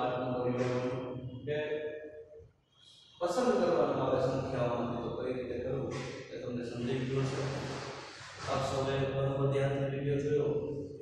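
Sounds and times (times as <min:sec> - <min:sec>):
man speaking in chant-like tone: 0:00.0 - 0:01.8, 0:03.2 - 0:10.7.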